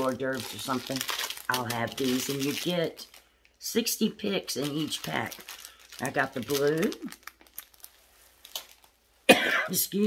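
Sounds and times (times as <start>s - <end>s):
plastic pack crinkling: 0.0s - 9.1s.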